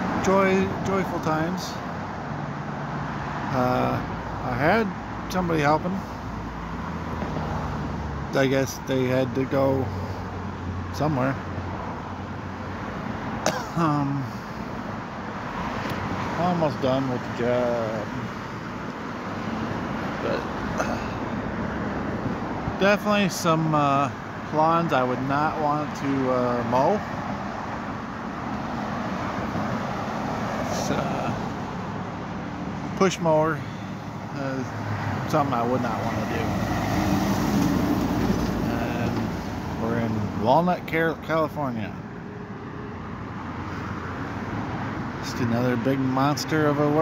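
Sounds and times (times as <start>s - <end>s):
passing cars: 0.0s - 47.0s
road traffic noise: 0.0s - 47.0s
car passing close by: 33.7s - 39.8s.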